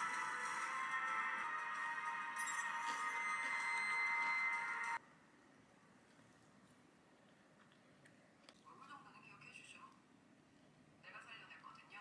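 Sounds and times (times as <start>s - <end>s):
music with steady held tones: 0.0s - 5.0s.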